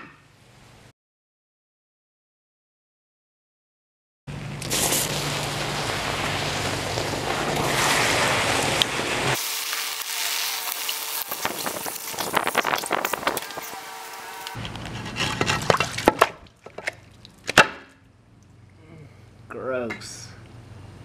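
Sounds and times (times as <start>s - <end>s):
molten metal sizzling and crackling: 4.4s - 14.7s
water pouring on hot metal: 4.6s - 14.6s.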